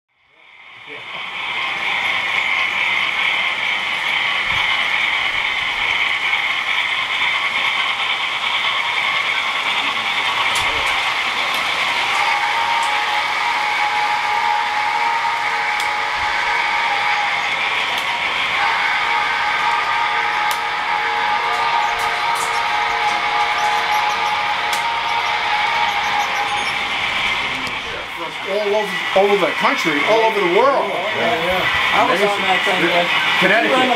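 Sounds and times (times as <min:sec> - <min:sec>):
model train motors whirring: 0:00.2 - 0:33.9
murmur of voices: 0:09.7 - 0:33.9
steady high tone: 0:09.8 - 0:33.9.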